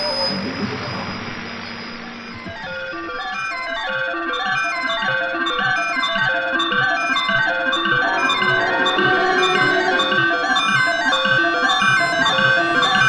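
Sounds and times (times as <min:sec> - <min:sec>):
patter of high-pitched tones: 0:07.2 - 0:13.0.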